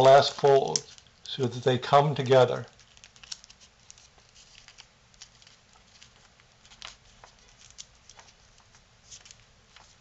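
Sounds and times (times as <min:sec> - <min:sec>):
cardstock crackling: 0:00.0 - 0:10.0.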